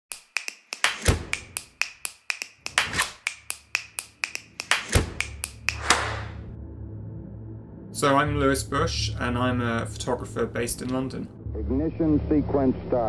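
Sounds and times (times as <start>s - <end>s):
sharp rhythmic clicks: 0.1s - 6.4s.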